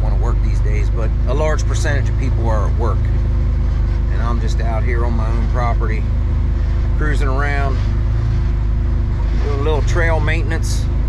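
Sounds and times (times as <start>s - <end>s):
utility vehicle engine droning: 0.0s - 11.0s.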